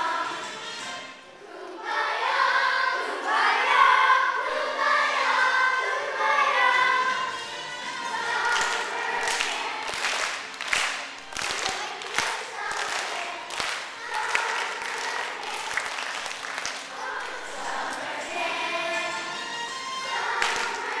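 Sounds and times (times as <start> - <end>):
children singing together: 0.0 - 21.0
sharp claps: 8.4 - 18.0, 20.3 - 20.9.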